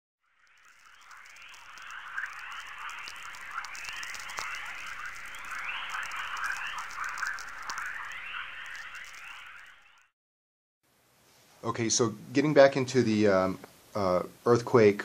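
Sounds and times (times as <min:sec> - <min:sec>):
crackling clicks: 0:00.2 - 0:10.1
rising radio chirps: 0:00.2 - 0:10.1.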